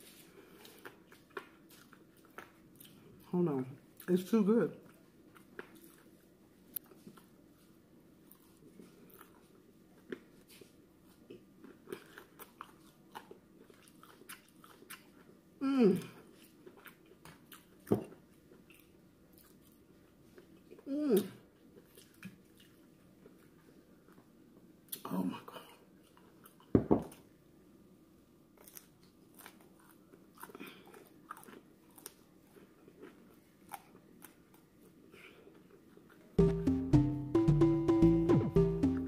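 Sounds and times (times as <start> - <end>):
chewing crispy fried fish: 0.0 - 24.3, 28.6 - 36.4.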